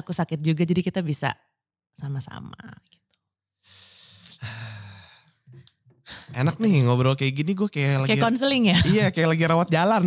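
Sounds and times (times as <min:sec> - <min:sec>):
person sighing: 0:03.7 - 0:05.1.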